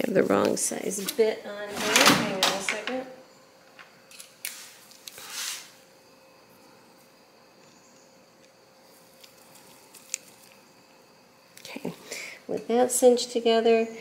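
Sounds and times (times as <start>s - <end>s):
rustling scrapes: 4.5s - 5.8s.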